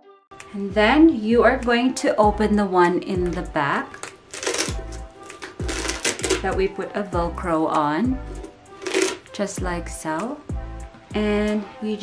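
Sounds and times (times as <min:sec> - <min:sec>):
background music with beat: 0:03.2 - 0:06.7
velcro tearing open: 0:04.0 - 0:06.5, 0:08.8 - 0:09.3.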